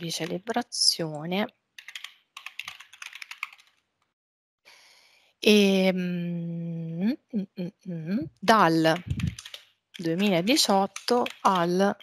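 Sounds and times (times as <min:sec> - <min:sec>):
computer keyboard typing: 0:00.0 - 0:00.5, 0:01.8 - 0:03.9, 0:08.8 - 0:12.0.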